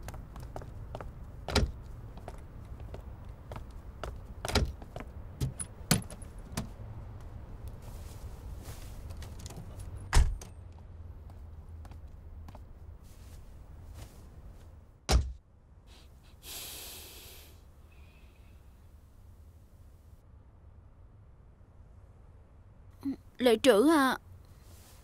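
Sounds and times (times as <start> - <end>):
low outdoor rumble: 0.0 - 16.4, 17.5 - 25.0
brief hiss: 15.9 - 17.6.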